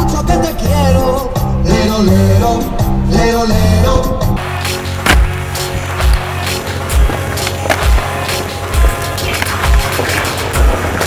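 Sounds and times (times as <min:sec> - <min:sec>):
music with steady beat: 0:00.0 - 0:11.0
skateboard wheels rolling: 0:04.6 - 0:11.0
skateboard clacks: 0:05.0 - 0:11.0.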